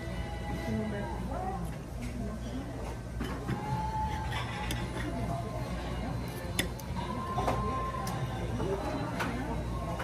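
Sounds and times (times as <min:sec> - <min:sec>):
indistinct chatter of diners: 0:00.0 - 0:10.0
dishes and cutlery clinking: 0:02.0 - 0:05.5.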